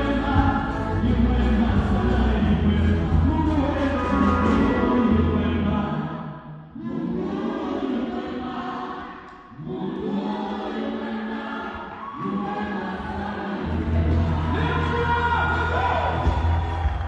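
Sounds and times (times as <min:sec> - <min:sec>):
band playing with bass: 0:00.0 - 0:05.8, 0:13.6 - 0:17.0
gospel choir singing: 0:00.0 - 0:17.0.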